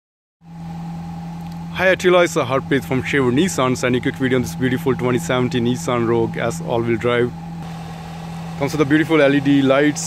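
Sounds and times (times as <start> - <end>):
car engine idling: 0.5 - 10.0.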